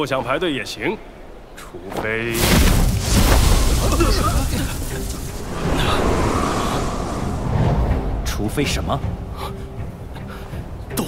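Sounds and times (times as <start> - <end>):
low rushing rumble: 5.0 - 9.8.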